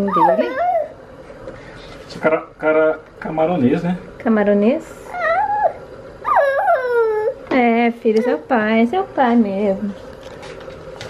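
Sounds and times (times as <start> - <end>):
baby squealing: 0.0 - 1.0, 5.1 - 7.4.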